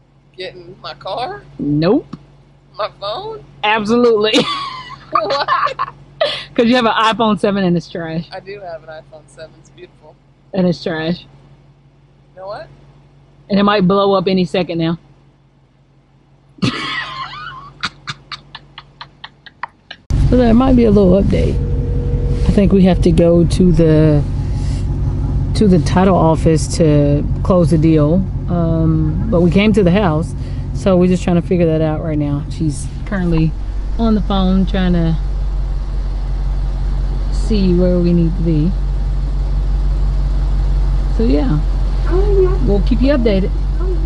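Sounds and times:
car engine idling: 0:00.0 - 0:17.5, 0:19.8 - 0:44.0
person laughing: 0:04.2 - 0:06.6, 0:16.6 - 0:20.0.

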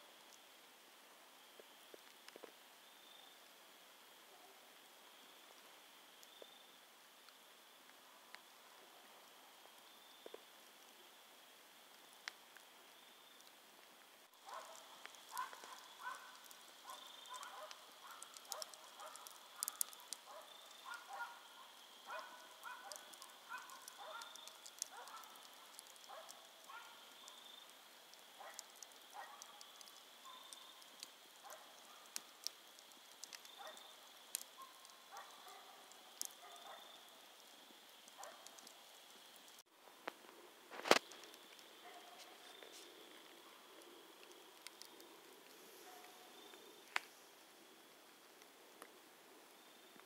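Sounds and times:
campfire crackling and popping: 0:00.0 - 0:04.2, 0:04.8 - 0:50.0.

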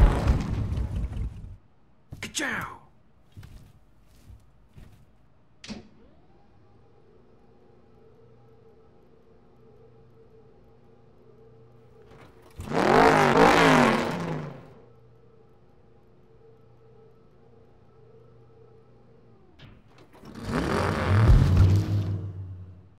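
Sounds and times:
engine idling: 0:00.0 - 0:01.6, 0:11.1 - 0:15.2, 0:16.6 - 0:23.0
race car engine revving: 0:00.0 - 0:01.6, 0:12.1 - 0:15.0, 0:20.1 - 0:23.0.

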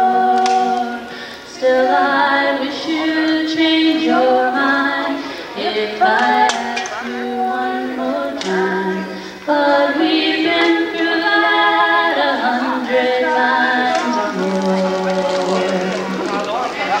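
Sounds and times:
girl singing: 0:00.0 - 0:16.2.

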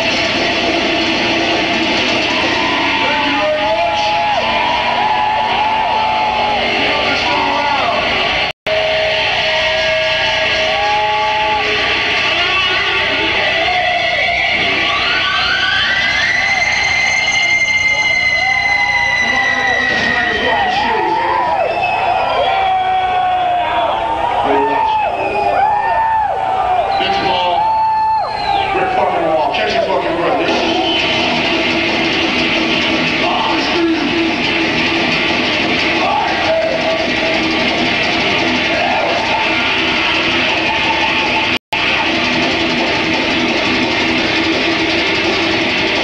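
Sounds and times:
distorted electric guitar: 0:00.0 - 0:23.6, 0:28.5 - 0:46.0
crowd noise: 0:00.0 - 0:46.0
whistling guitar feedback tones: 0:13.8 - 0:24.2, 0:24.9 - 0:25.8, 0:26.8 - 0:29.0, 0:30.4 - 0:33.5.

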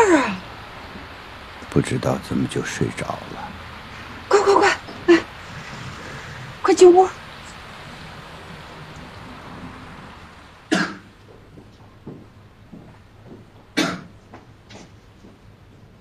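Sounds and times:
low room hum: 0:00.0 - 0:16.0
person coughing: 0:13.8 - 0:14.1.

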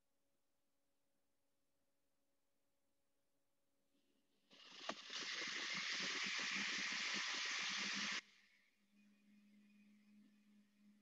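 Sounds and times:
steady hiss of noise: 0:04.5 - 0:08.6.

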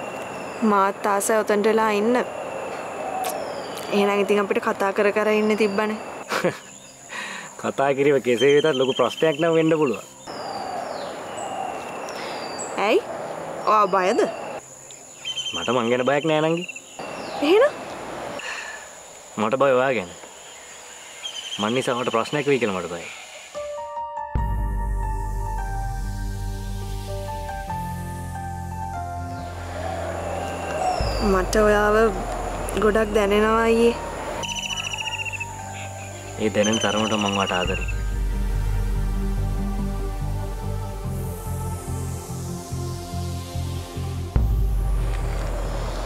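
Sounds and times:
insects trilling: 0:00.0 - 0:23.8, 0:28.9 - 0:46.0.

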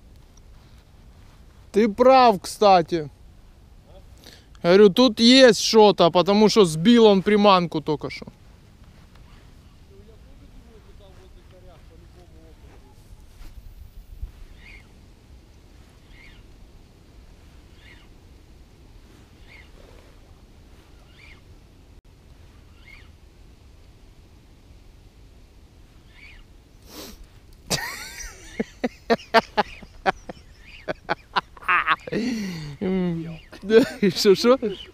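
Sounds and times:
wind rumbling on microphone: 0:08.3 - 0:27.6
faint bird call: 0:14.5 - 0:14.9, 0:16.0 - 0:16.5, 0:17.7 - 0:18.2, 0:19.4 - 0:19.9, 0:20.8 - 0:21.5, 0:22.7 - 0:23.2, 0:26.0 - 0:26.5
sharp bird cries: 0:14.5 - 0:14.9, 0:16.0 - 0:16.5, 0:17.7 - 0:18.2, 0:19.4 - 0:19.8, 0:20.9 - 0:21.5, 0:22.7 - 0:23.2, 0:26.0 - 0:26.5.

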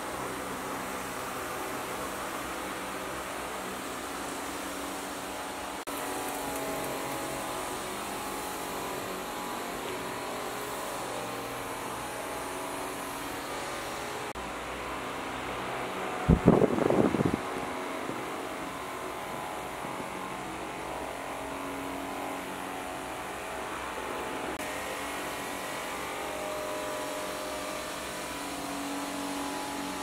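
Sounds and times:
mechanical hum with hiss: 0:00.0 - 0:30.0.

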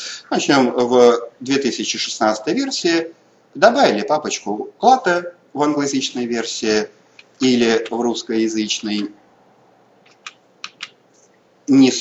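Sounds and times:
computer keys clicking: 0:10.0 - 0:11.4.

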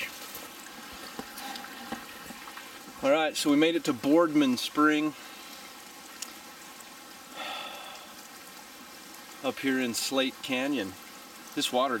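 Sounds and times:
water rushing from pipe: 0:00.0 - 0:12.0
breathy sound: 0:07.3 - 0:08.2.

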